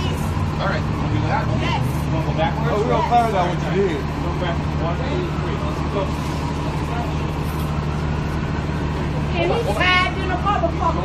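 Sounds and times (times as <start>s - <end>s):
bus engine idling: 0.0s - 11.0s
faint voices of bystanders: 0.0s - 11.0s.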